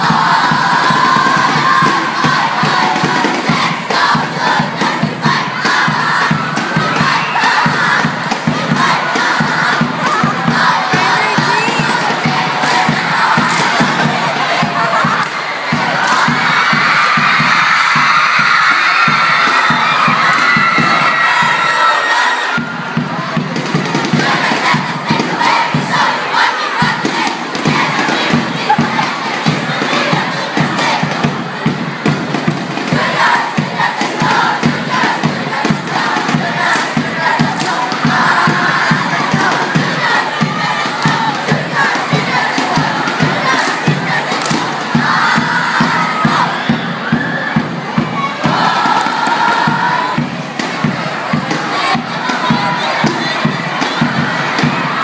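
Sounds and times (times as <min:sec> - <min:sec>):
crowd cheering and shouting: 0:00.0 - 0:55.0
steady beat: 0:00.0 - 0:55.0.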